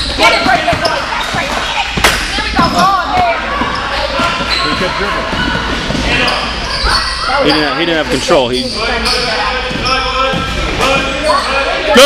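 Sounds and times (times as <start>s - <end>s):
shouts and voices of people: 0.0s - 12.0s.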